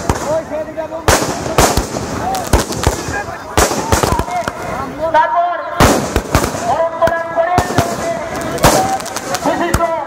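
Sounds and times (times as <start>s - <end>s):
fireworks bangs: 0.0s - 5.1s, 5.8s - 10.0s.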